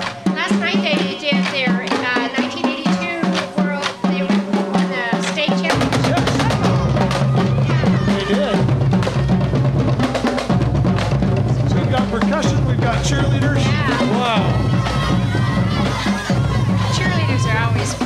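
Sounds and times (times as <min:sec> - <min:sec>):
marching drumline beating: 0:00.0 - 0:18.0
sustained low brass notes: 0:10.6 - 0:18.0.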